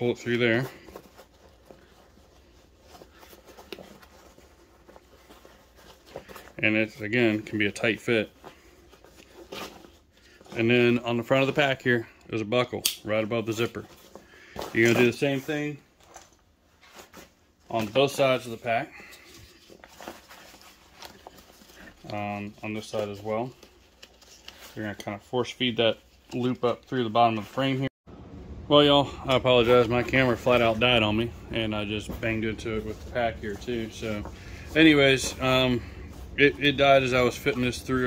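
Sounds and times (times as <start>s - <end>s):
nylon webbing rustling and scraping: 0.0s - 27.9s, 29.3s - 38.0s.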